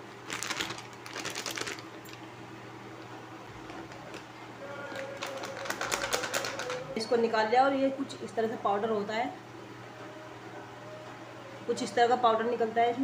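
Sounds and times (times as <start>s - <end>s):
steady low hum: 0.0s - 13.0s
packet crinkling: 0.2s - 2.2s, 3.5s - 4.3s, 4.9s - 6.9s.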